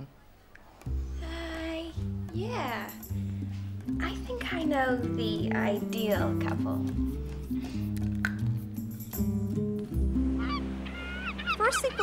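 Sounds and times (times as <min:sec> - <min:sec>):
honking bird calls: 0:10.2 - 0:12.0.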